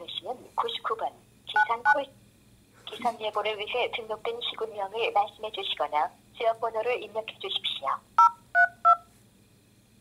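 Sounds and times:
keypad two-tone beeps: 8.2 - 9.0.

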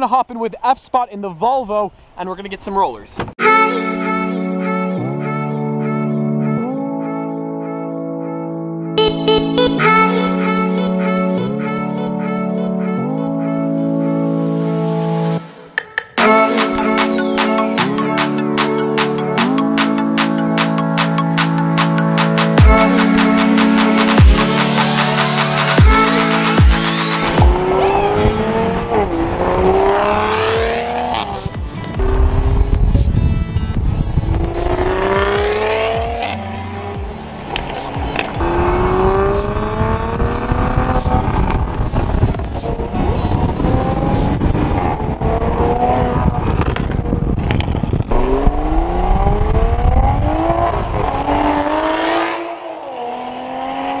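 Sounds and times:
background music: 3.4 - 46.2
car engine accelerating hard: 19.4 - 54.0.

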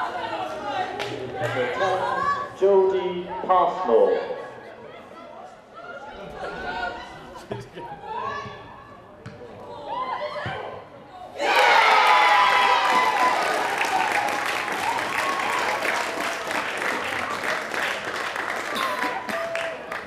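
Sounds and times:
players shouting: 9.8 - 16.0
crowd cheering and clapping: 11.4 - 20.0.

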